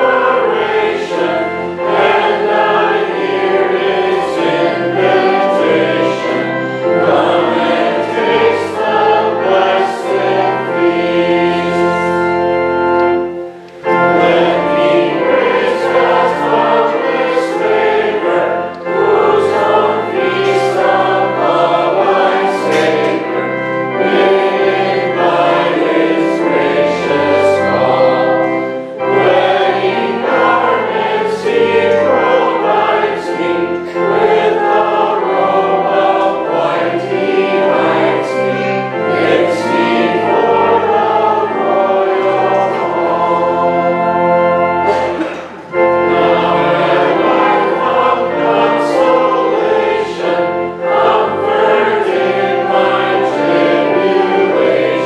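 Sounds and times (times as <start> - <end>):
organ accompaniment: 0.0 - 55.0
voices singing sacred piece: 0.0 - 55.0.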